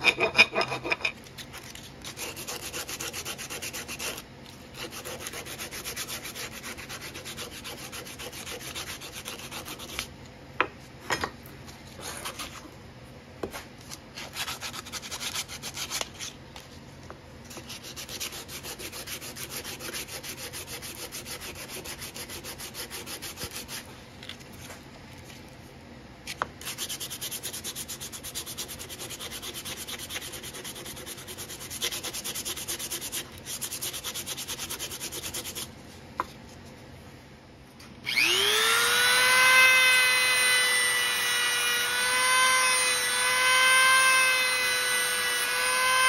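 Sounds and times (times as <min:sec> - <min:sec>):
sandpaper sanding wood: 0:02.0 - 0:04.2, 0:04.8 - 0:10.0, 0:14.3 - 0:16.1, 0:17.5 - 0:23.9, 0:26.6 - 0:35.7.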